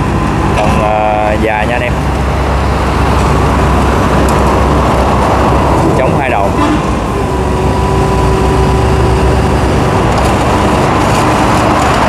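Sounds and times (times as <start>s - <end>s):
diesel engine running under load: 0.0s - 12.0s
hydraulic boom and arm working: 1.9s - 12.0s.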